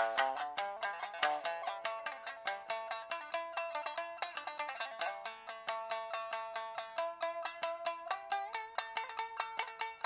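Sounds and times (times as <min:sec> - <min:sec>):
plucked string instrument music: 0:00.0 - 0:10.0.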